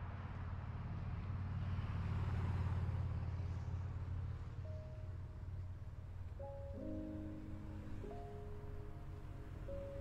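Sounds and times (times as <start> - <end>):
vehicle passing by: 0.0 - 4.6.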